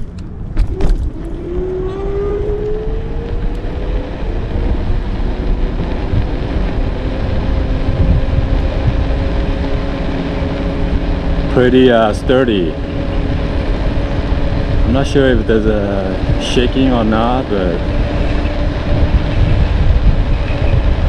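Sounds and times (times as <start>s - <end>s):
road rumble: 0.0s - 21.0s
wind noise: 0.0s - 21.0s
electric motor whine: 0.6s - 21.0s.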